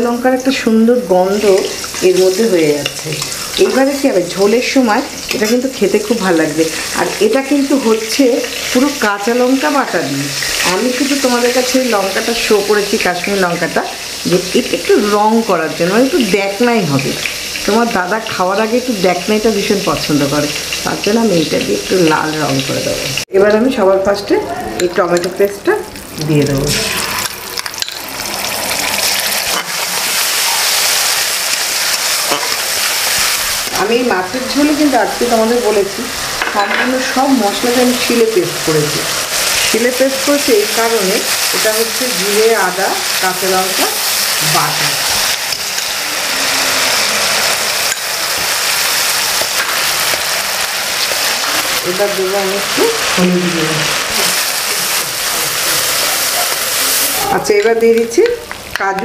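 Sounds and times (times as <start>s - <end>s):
paste sizzling in hot oil: 0.1s - 23.3s, 25.9s - 58.8s
spatula scraping and knocking pan: 31.5s - 33.3s.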